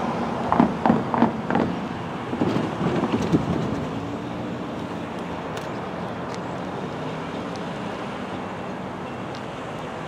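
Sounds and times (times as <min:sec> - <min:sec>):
distant diesel train rumble: 0:00.0 - 0:10.0.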